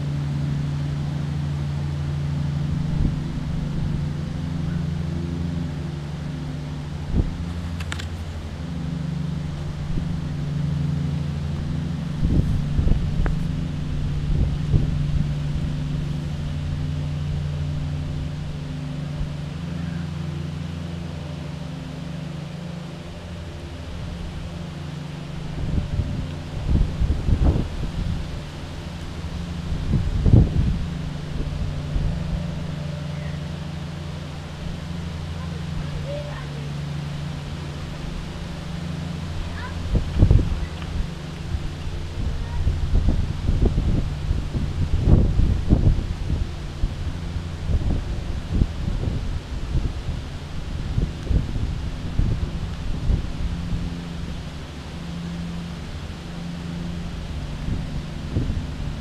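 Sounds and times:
motor humming: 0.0 - 59.0
wind bumps on microphone: 11.9 - 16.0, 25.4 - 28.5, 29.2 - 32.5, 39.4 - 54.4, 57.5 - 59.0.

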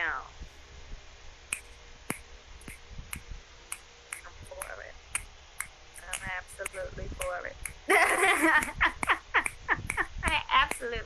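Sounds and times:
finger snapping: 1.5 - 6.8.

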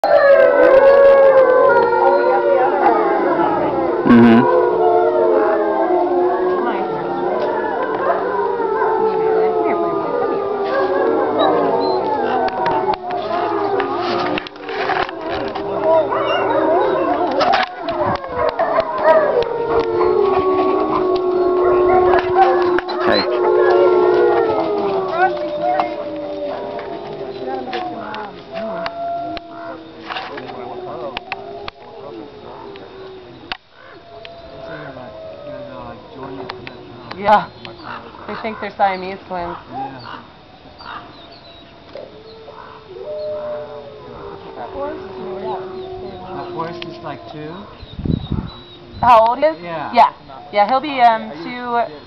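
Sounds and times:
wolves howling: 0.0 - 52.0.

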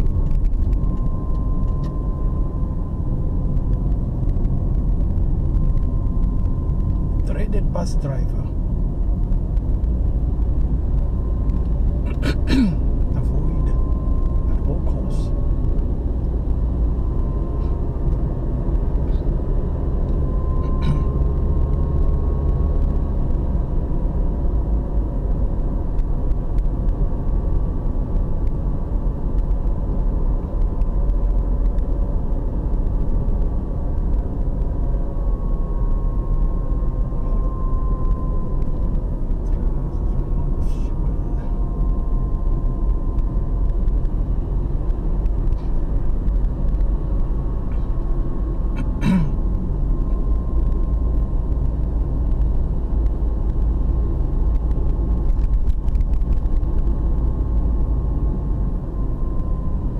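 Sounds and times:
car engine rumble: 0.0 - 59.9
tyres on the road: 0.0 - 59.9.

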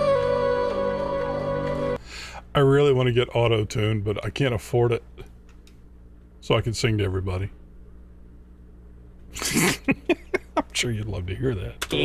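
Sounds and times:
low steady hum: 0.0 - 12.0
man bursting into laughter: 9.4 - 10.7.

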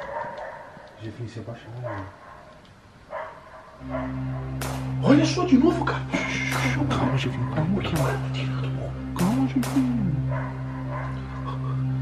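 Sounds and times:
distant dogs barking: 0.0 - 12.0
steady low drone: 3.8 - 12.0.

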